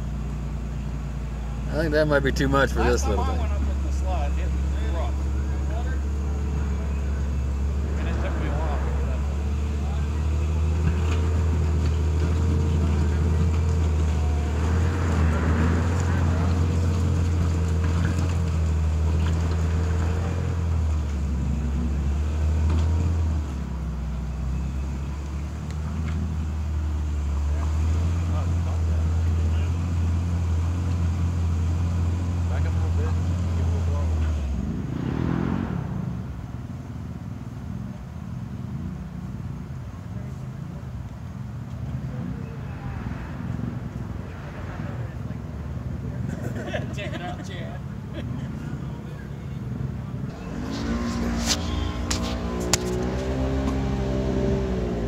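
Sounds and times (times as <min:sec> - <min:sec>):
engine droning at low revs: 0:00.0 - 0:55.0.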